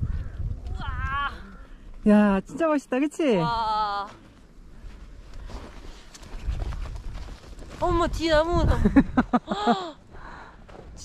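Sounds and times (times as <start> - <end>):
low rumble on microphone: 0.0 - 2.0
footsteps on packed snow: 4.0 - 8.5.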